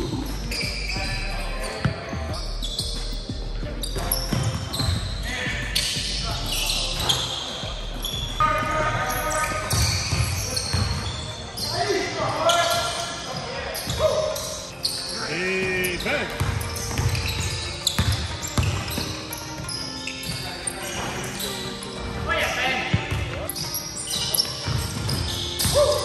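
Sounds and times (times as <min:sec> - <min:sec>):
sneaker squeaks: 0:00.0 - 0:26.0
basketball bouncing on hardwood floor: 0:16.4 - 0:19.0.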